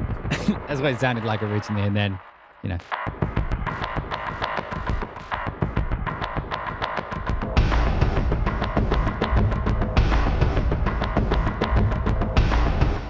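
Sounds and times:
bass layer: 0.0 - 1.3, 7.4 - 13.0
electronic percussion loop: 0.0 - 13.0.

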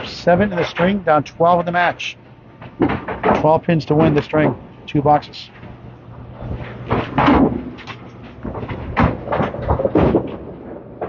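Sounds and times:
bowling balls knocking pins: 2.6 - 4.6, 6.6 - 11.0.

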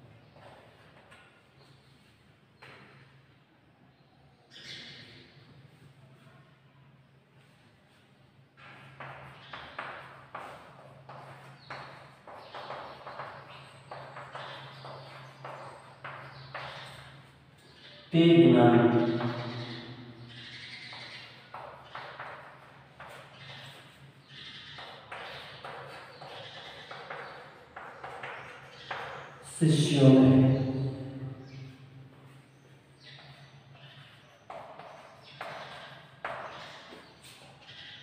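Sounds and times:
chalk tapping against board: 8.6 - 17.4, 20.9 - 24.0, 24.8 - 29.4.

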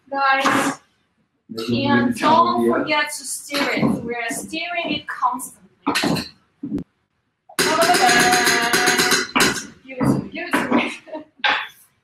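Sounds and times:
person speaking: 0.1 - 0.8, 1.5 - 6.8, 7.6 - 11.8.

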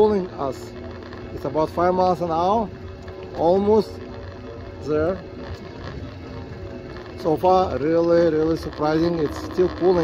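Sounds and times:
electric motor hum: 0.0 - 10.0.

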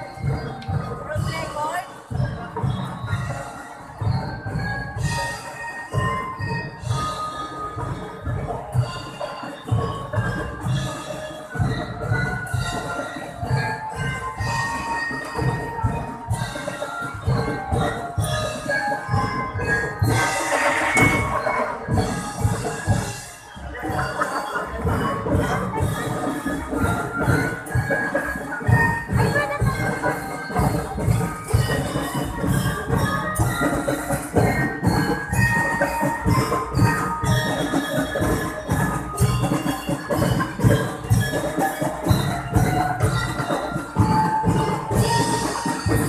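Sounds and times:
drum beats: 0.0 - 46.0.

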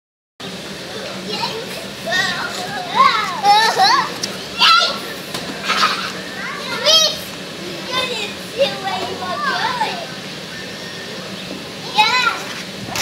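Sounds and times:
children shouting and squealing: 0.8 - 13.0.

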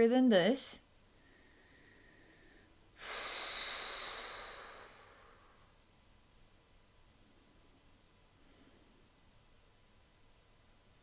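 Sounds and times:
woman breathing out deeply: 1.1 - 5.8.

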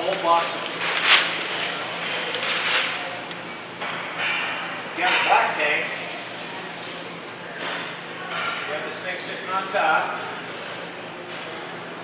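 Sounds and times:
paper rustling: 0.0 - 3.1.

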